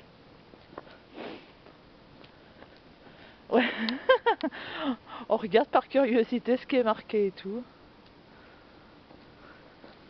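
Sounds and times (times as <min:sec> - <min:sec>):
short sniff: 0:01.1 - 0:01.6.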